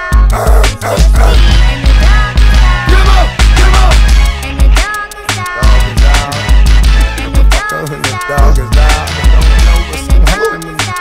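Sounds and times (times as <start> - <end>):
hip hop beat with heavy bass: 0.0 - 11.0.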